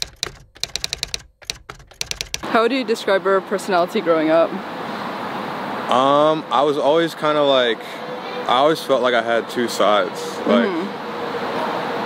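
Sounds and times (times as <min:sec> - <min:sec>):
keyboard typing clicks: 0:00.0 - 0:02.4.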